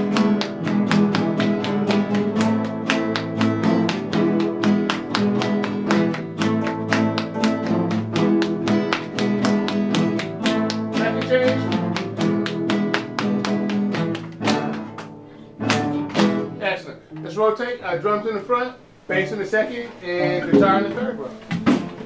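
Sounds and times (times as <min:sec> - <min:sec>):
classical guitar ensemble playing: 0:00.0 - 0:18.0, 0:20.0 - 0:22.0.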